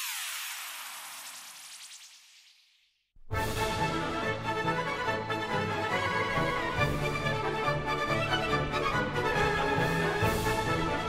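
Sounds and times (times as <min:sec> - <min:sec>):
descending swoop sound effect: 0:00.0 - 0:03.1.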